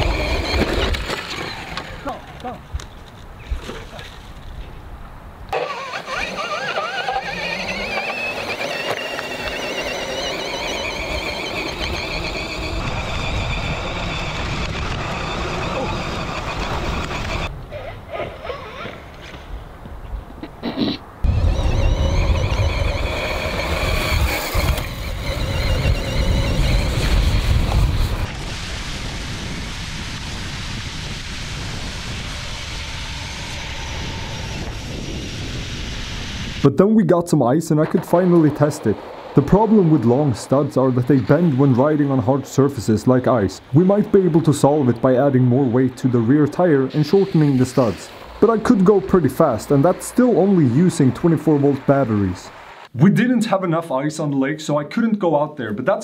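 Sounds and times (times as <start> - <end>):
electric motor whining: 0.0 - 2.3, 5.5 - 17.5, 21.2 - 29.2, 31.1 - 36.6
ground and wind noise: 0.0 - 53.0.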